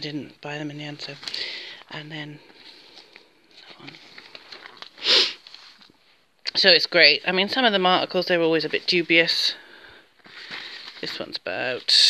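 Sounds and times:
newspaper clippings rustling: 2.6s - 5.9s, 10.2s - 11.4s
person sniffing: 5.0s - 5.8s.

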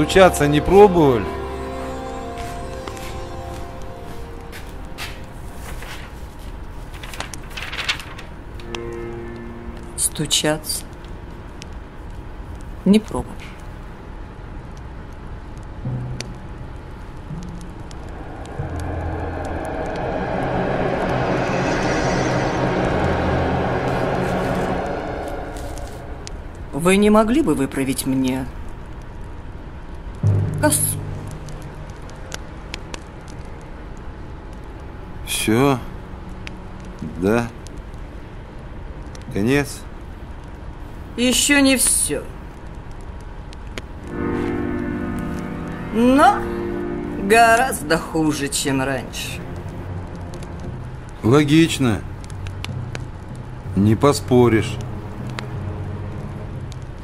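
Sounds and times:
sustained music chord: 0.0s - 11.7s, 15.8s - 27.4s, 30.2s - 33.4s, 44.0s - 50.6s, 53.8s - 56.8s
rustling scrape: 5.0s - 8.7s, 18.2s - 26.7s
faint crackles and ticks: 5.6s - 22.9s, 27.2s - 30.3s, 31.0s - 47.0s, 48.5s - 57.0s
low room rumble: 15.3s - 27.6s.

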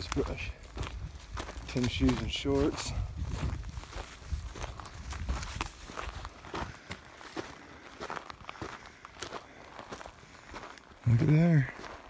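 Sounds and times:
twigs snapping underfoot: 0.0s - 2.7s, 4.4s - 6.3s
footsteps crunching dry grass: 0.0s - 12.0s.

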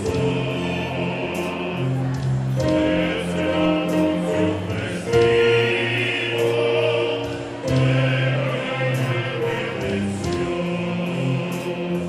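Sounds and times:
mixed choir singing: 0.0s - 12.0s
small instrumental ensemble: 0.0s - 12.0s.

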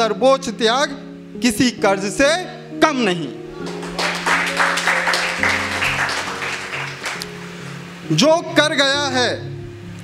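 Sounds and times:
soft background music: 0.0s - 10.0s
audience applauding: 3.6s - 7.6s.

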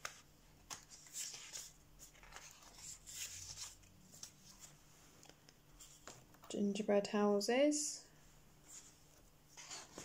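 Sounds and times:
paper rustling: 0.0s - 6.4s, 9.6s - 10.0s.

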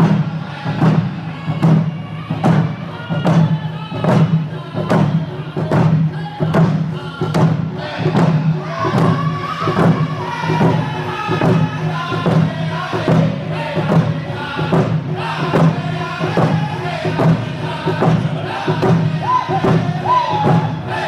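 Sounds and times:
hand drums beating: 0.0s - 21.0s
men singing in unison: 0.0s - 21.0s.

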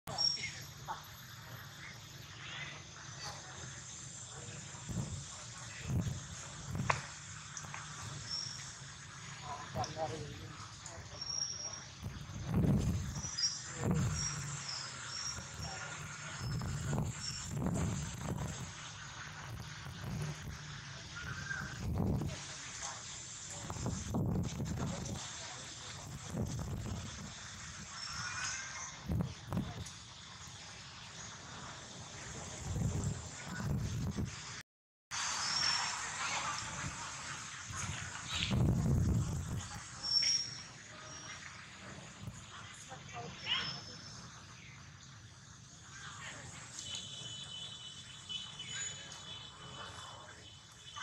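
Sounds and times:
distant indistinct voices: 0.1s - 24.0s, 24.7s - 32.4s, 35.2s - 51.0s
bird chirps: 13.0s - 17.5s.

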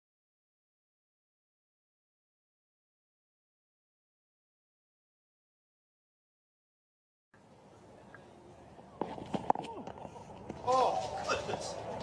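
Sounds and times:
low crowd ambience: 7.4s - 12.0s.

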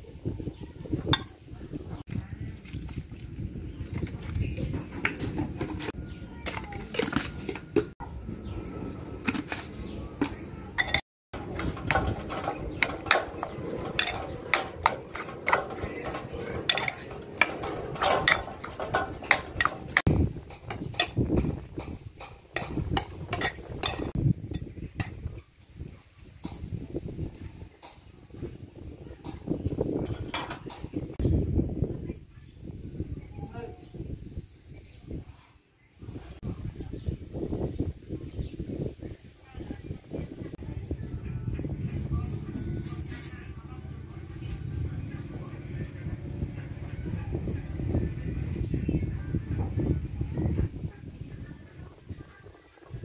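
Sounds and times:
metal spoon scraping a bowl: 10.8s - 21.2s, 22.2s - 25.1s.

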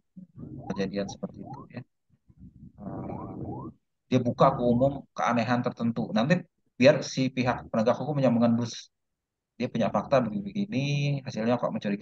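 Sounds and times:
man making hesitation sound: 0.4s - 1.9s.

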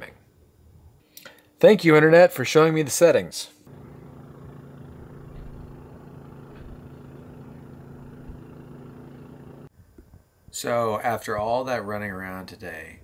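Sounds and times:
engine idling: 3.7s - 9.7s.

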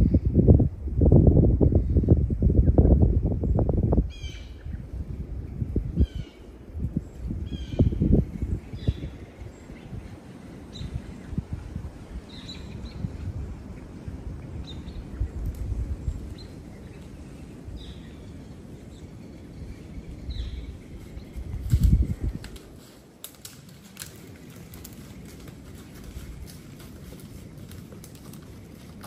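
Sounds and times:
low microphone rumble: 0.0s - 22.6s
birds chirping: 5.7s - 22.4s
footsteps crunching dry leaves: 21.0s - 29.0s.

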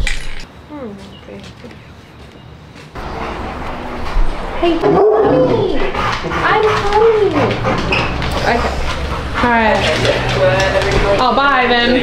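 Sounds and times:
dog whining: 4.8s - 9.7s.

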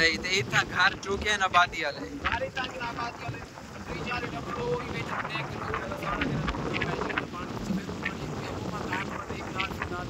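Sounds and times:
floodwater rushing: 0.0s - 10.0s
wind on microphone: 0.0s - 10.0s.

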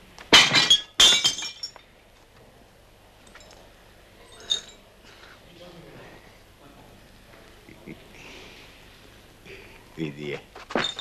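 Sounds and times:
glass crashing and shattering: 0.3s - 1.8s, 10.7s - 11.0s
glass clink: 0.4s - 1.8s, 4.2s - 4.9s
glass tinkling: 0.5s - 1.8s, 4.2s - 4.9s, 10.8s - 11.0s.

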